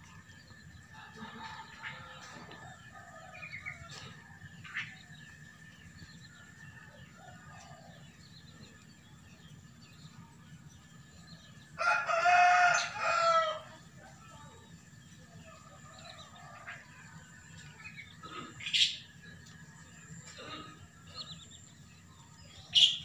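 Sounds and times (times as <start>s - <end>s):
small birds chirping: 0.0s - 23.0s
rooster crowing: 0.9s - 4.3s, 11.8s - 13.8s.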